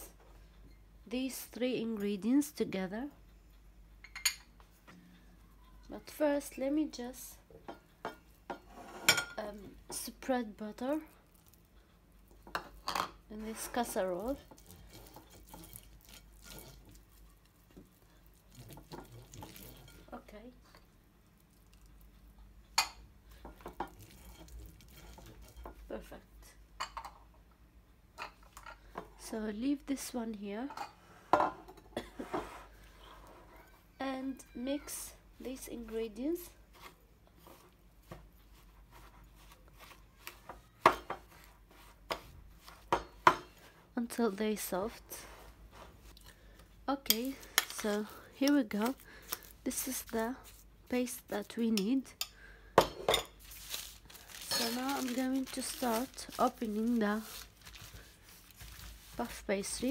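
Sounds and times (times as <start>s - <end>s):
spoon scraping ceramic bowl: 8.5s - 9.4s, 12.6s - 17.0s, 23.7s - 25.8s
pastry brush strokes on glass dish: 35.5s - 43.0s, 53.3s - 59.9s.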